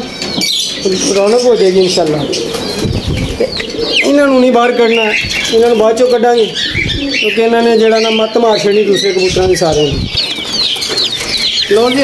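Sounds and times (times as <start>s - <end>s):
high chirps: 0.0s - 12.0s
pigeons cooing: 0.0s - 12.0s
wings fluttering: 9.3s - 12.0s.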